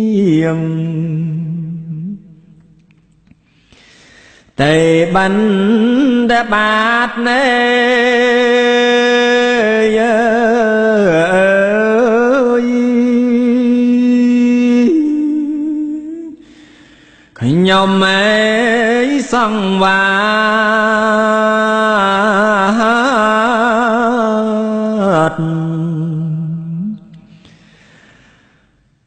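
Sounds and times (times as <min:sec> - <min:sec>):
monk chanting: 0:04.6 - 0:16.4, 0:17.4 - 0:27.3.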